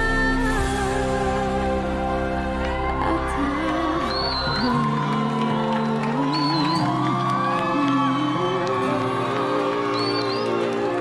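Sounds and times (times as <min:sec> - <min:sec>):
woman singing a ballad: 0:00.0 - 0:11.0
audience whoops and whistles: 0:02.3 - 0:11.0.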